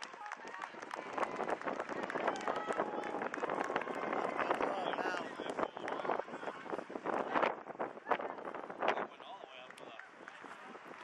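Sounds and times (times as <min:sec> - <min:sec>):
spectators talking and calling out: 0:00.0 - 0:11.0.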